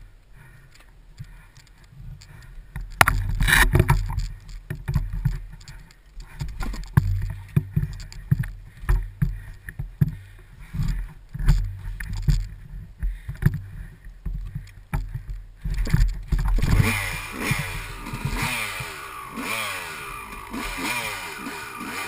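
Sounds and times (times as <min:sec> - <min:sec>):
dirt bike engine revving: 0:16.3 - 0:22.0.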